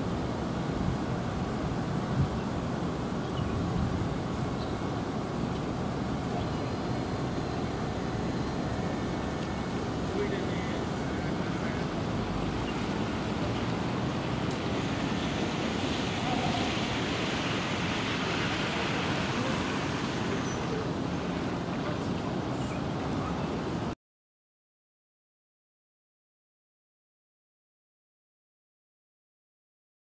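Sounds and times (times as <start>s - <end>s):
tyres hissing on wet road: 0.0s - 23.8s.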